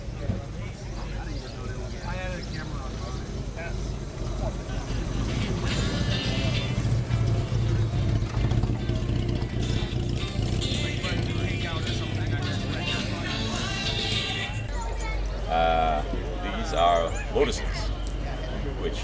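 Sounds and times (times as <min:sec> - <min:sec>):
car engine running: 0:00.0 - 0:14.8
voices: 0:00.0 - 0:19.0.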